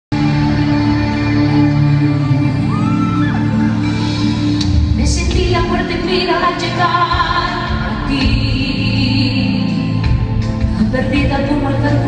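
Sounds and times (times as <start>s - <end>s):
live pop concert music: 0.1s - 12.0s.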